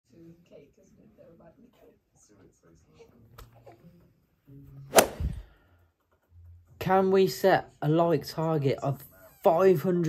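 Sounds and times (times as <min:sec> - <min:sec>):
whip-like swish and crack: 0:04.9 - 0:05.4.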